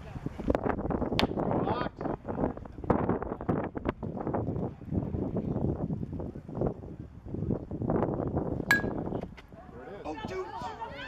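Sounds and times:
background noise: 0:00.0 - 0:11.0
metal bat hitting ball: 0:08.7 - 0:09.2.

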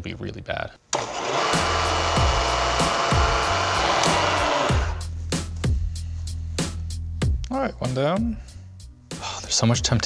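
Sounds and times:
milling machine drilling metal: 0:01.0 - 0:05.0
background music with bass beat: 0:01.8 - 0:09.9.

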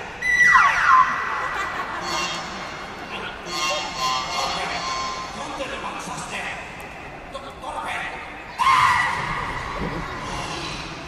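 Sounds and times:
steady high held tone: 0:02.0 - 0:05.8.

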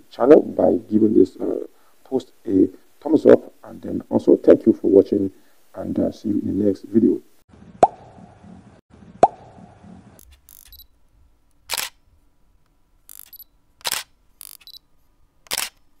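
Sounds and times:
short noise bursts: 0:10.2 - 0:10.9, 0:11.7 - 0:12.0, 0:13.1 - 0:14.8
small clicks: 0:10.2 - 0:10.9, 0:13.1 - 0:14.8, 0:15.5 - 0:15.9.

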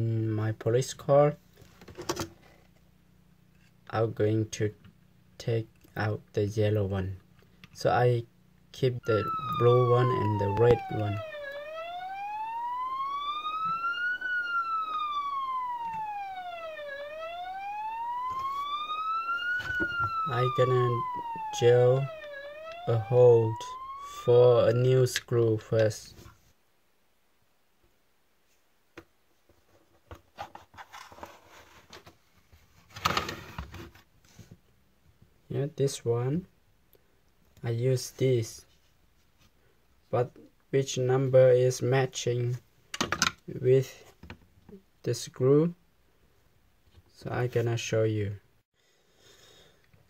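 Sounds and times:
plastic clatter: 0:01.6 - 0:02.5, 0:42.9 - 0:43.4
toy siren wailing: 0:08.9 - 0:24.9.

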